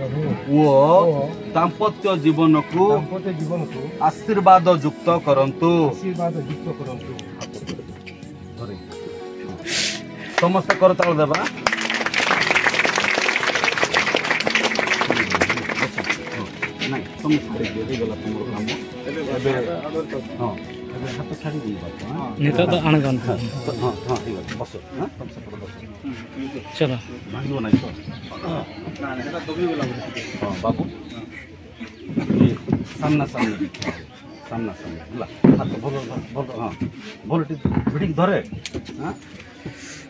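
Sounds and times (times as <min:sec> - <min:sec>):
people talking quietly: 0:00.0 - 0:40.0
crowd applauding: 0:10.3 - 0:18.0.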